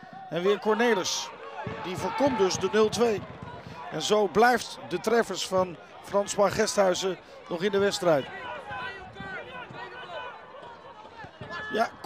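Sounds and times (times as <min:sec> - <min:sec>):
players and spectators calling out: 0:00.0 - 0:12.0.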